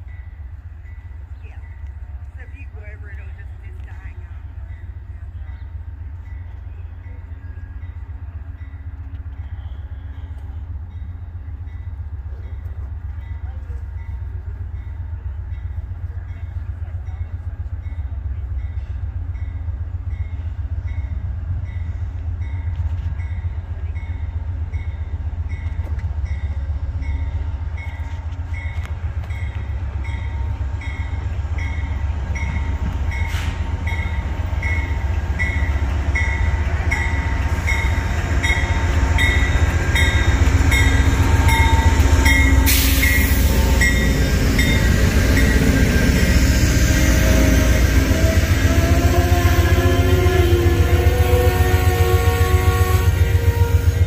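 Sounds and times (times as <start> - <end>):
locomotive bell dinging: 0.0 - 46.3
diesel locomotive engine rumble: 0.0 - 54.0
train cars metal squealing: 31.7 - 52.2.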